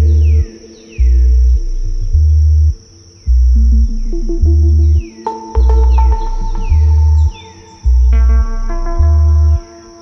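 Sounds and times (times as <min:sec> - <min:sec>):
deep bass pulses: 0:00.0 - 0:09.7
held synth tones: 0:00.0 - 0:10.0.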